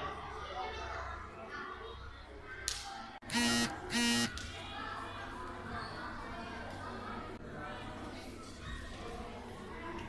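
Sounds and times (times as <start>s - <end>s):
background chatter: 0.0s - 10.0s
short loud buzzes: 3.2s - 4.4s.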